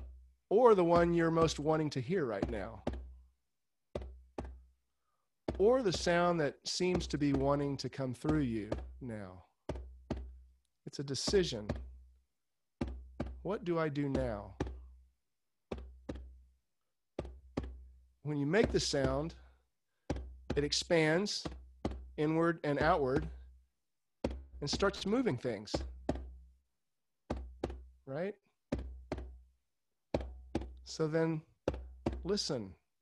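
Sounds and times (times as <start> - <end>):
dull knocks with low boom: 0.8 - 3.3, 5.5 - 10.5, 12.8 - 15.0, 17.2 - 19.5, 20.1 - 23.5, 24.2 - 26.6
low drum double beat: 0.9 - 3.1, 5.6 - 9.2, 12.8 - 15.0, 17.2 - 19.4, 20.2 - 23.4, 24.2 - 26.4.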